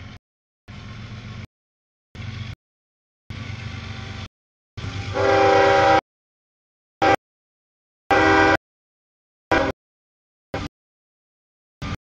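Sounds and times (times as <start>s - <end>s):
diesel engine rumble: 0.0s - 1.5s, 2.2s - 2.6s, 3.3s - 5.9s
locomotive air horn chord: 5.0s - 6.0s, 7.0s - 7.2s, 8.1s - 8.6s, 9.5s - 9.8s.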